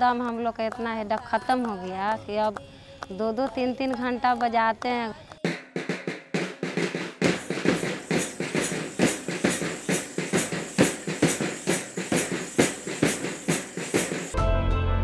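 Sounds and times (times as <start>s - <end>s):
drums beaten fast: 5.4s - 14.4s
deep drum: 5.5s - 14.4s.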